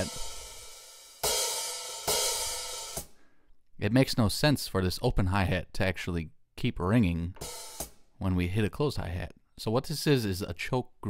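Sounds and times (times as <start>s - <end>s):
open hi-hat ringing: 0.0s - 3.1s, 7.4s - 8.0s
closed hi-hat choke: 0.0s - 3.2s, 7.4s - 8.0s.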